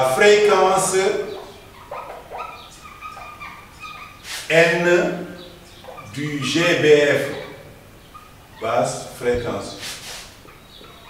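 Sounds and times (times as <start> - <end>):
marker squeaking on whiteboard: 1.9 - 4.6, 8.5 - 10.6.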